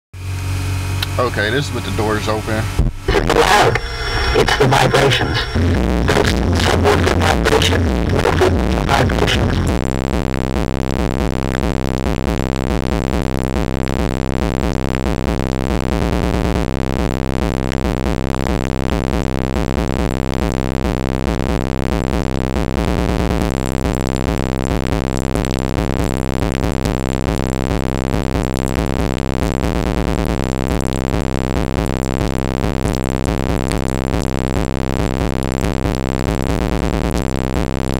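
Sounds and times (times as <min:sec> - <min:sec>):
deep bass notes: 0:00.9 - 0:37.9
bass-heavy electronic music: 0:01.0 - 0:37.9.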